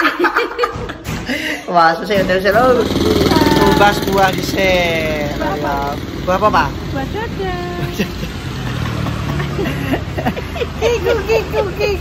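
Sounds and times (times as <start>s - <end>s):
car engine idling: 2.5s - 11.0s.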